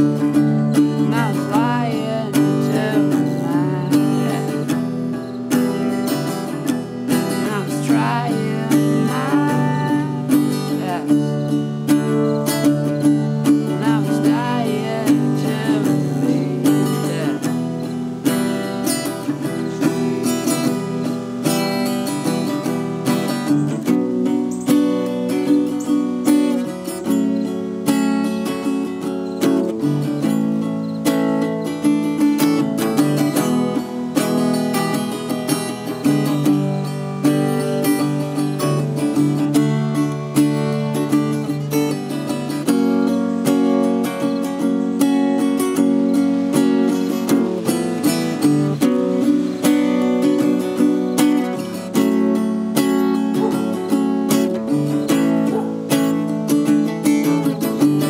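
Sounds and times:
acoustic guitar chords: 0.0 - 58.0.

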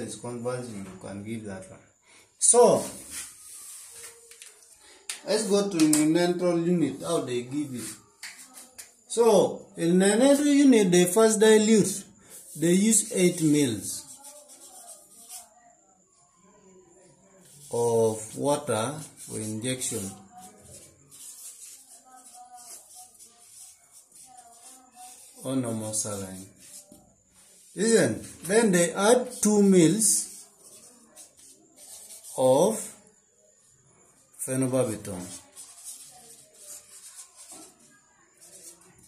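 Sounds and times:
marker writing on paper: 2.7 - 4.8, 5.4 - 9.0, 10.1 - 15.7, 17.4 - 33.0, 34.8 - 39.0.

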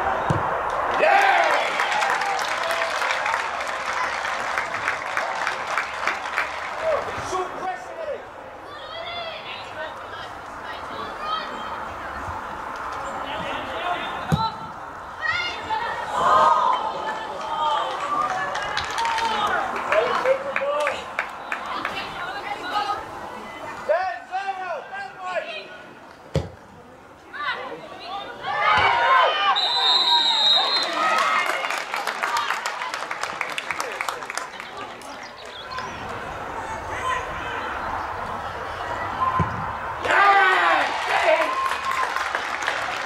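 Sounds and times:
players shouting: 0.0 - 11.8, 27.3 - 32.5, 36.2 - 42.8
open-air background noise: 0.0 - 43.0
indistinct talking: 5.6 - 41.5.

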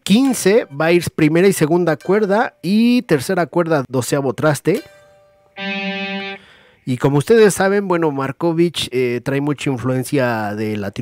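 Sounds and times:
distorted electric guitar chord: 5.6 - 6.6.

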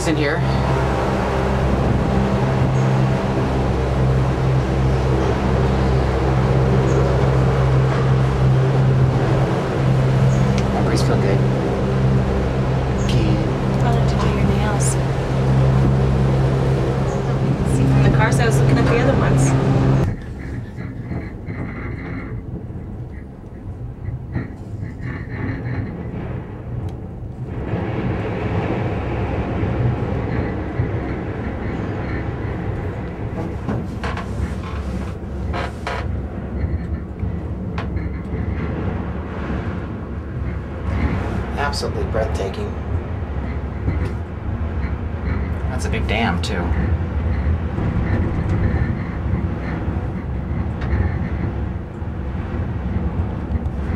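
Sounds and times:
cabin rumbling and rattling on cable: 0.0 - 53.9
gondola machinery humming: 0.0 - 53.9.

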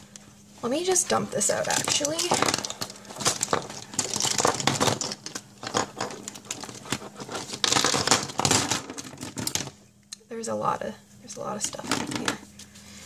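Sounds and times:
plastic stationery clattering: 1.5 - 9.7.

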